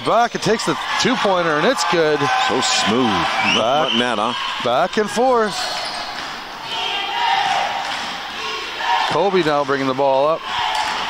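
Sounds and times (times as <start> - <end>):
crowd chatter echoing: 0.0 - 11.0.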